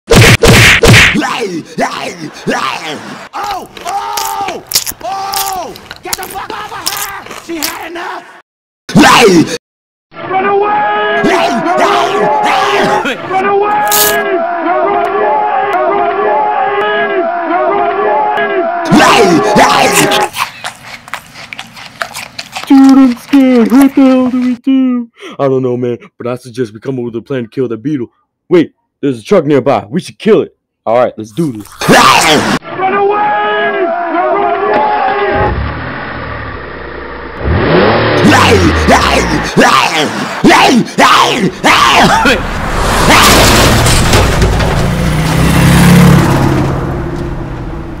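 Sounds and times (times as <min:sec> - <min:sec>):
person shouting: 0:01.1 - 0:09.6, 0:10.3 - 0:20.3, 0:31.8 - 0:35.5, 0:38.2 - 0:42.5
truck engine revving: 0:34.8 - 0:40.4, 0:42.1 - 0:48.0.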